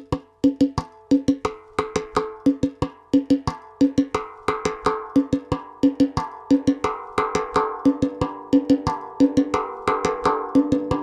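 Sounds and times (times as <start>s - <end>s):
pitched percussion music: 0.0s - 11.0s.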